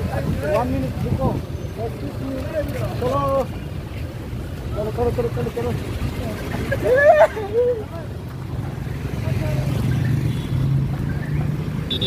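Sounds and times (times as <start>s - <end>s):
people talking: 0.0s - 3.6s, 4.7s - 8.2s, 9.0s - 10.0s.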